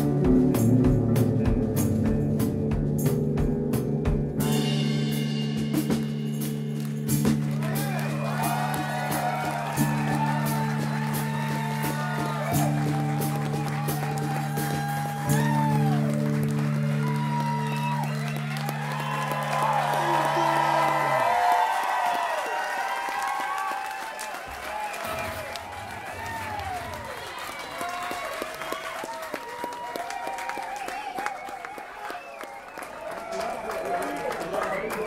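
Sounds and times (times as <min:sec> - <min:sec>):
crowd cheering and applauding: 0:05.8 - 0:35.0.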